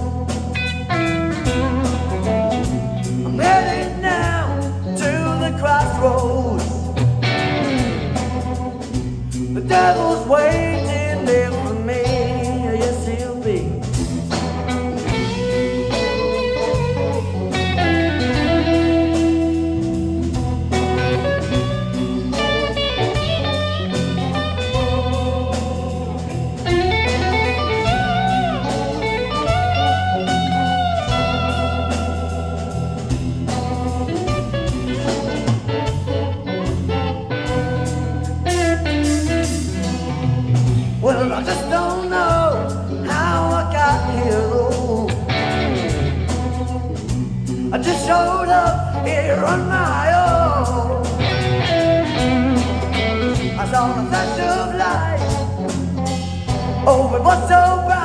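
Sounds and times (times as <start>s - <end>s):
bass guitar: 0.0s - 58.0s
drums: 0.0s - 58.0s
electric guitar lead with bent notes: 0.0s - 58.0s.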